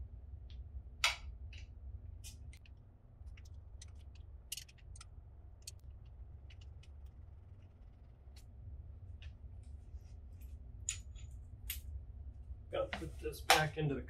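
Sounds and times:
low steady hum: 0.0 - 14.0
screwdriver and metal parts clicking: 3.3 - 5.8.

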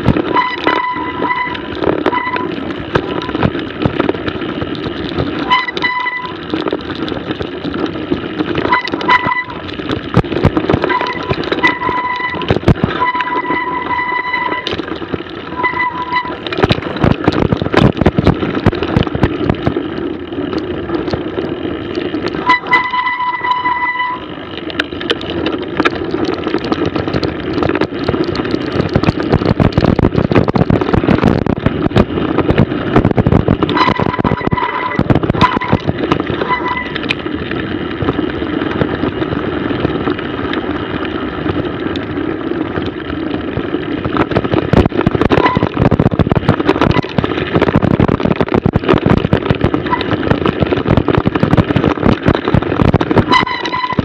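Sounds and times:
bike knocking and rattling: 0.0 - 54.0
brakes squealing: 0.0 - 54.0
tyre and wind rush: 0.0 - 54.0.

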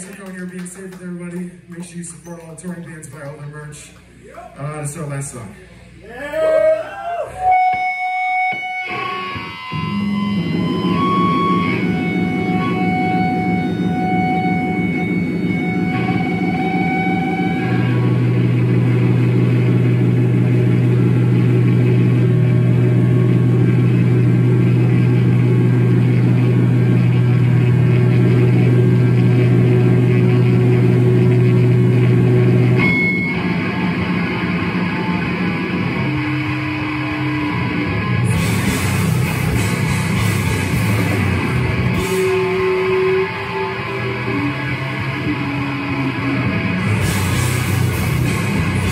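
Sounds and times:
distorted electric guitars droning: 0.0 - 48.9
high feedback whistles: 7.4 - 18.2, 42.0 - 46.2.

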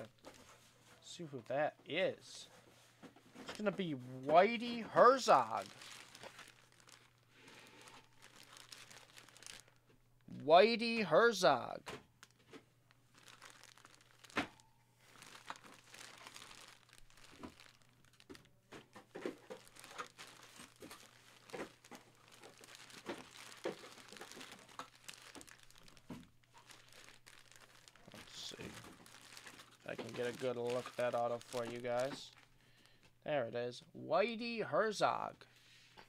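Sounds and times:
plastic bag crinkling: 3.4 - 9.9, 12.1 - 33.0.

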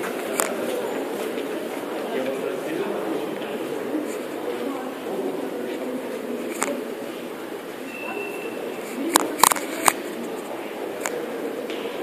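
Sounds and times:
echoing atrium background noise: 0.0 - 12.0.

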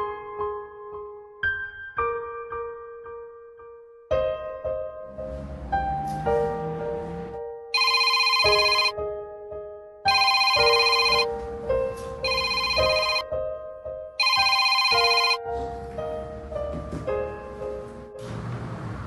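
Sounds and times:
background music: 0.0 - 18.8
phone ringtone trilling: 7.8 - 8.9, 10.1 - 11.3, 12.2 - 13.2, 14.2 - 15.4.

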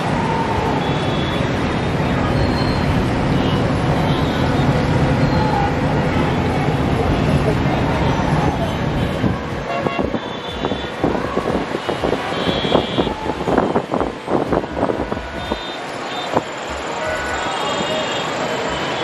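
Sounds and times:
traffic hum of engines and tyres: 0.0 - 19.0
car and motorbike horn toots: 8.1 - 14.3, 15.0 - 19.0.

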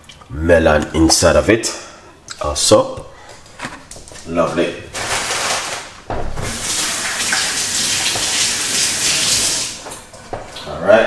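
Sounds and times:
water running: 5.3 - 11.0.

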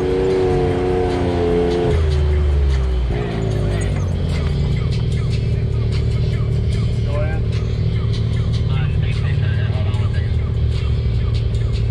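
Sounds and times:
engine running low: 0.0 - 11.9
music with vocals: 0.0 - 11.9.

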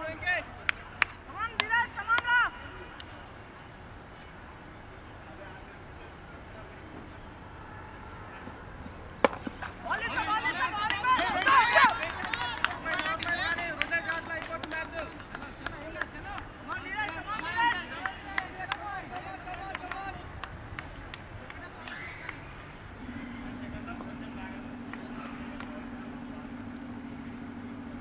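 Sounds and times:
cricket bat striking ball: 9.2 - 9.8
players shouting: 9.2 - 15.1, 15.7 - 20.4.

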